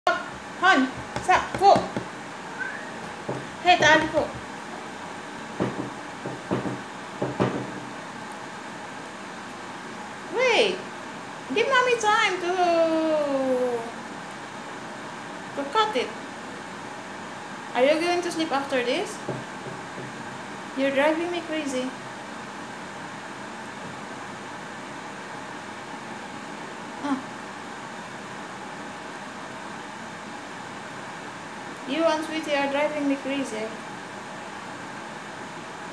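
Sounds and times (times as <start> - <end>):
room noise: 0.1 - 12.4.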